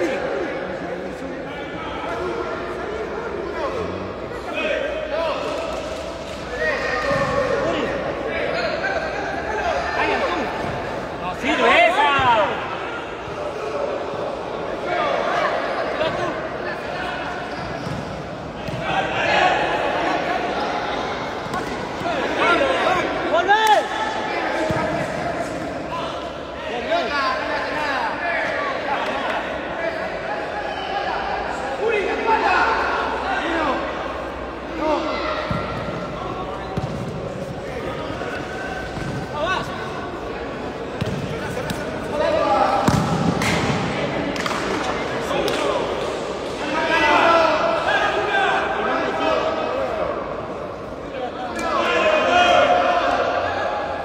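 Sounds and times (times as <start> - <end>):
people shouting in echoing hall: 6.4 - 17.8, 18.4 - 54.0.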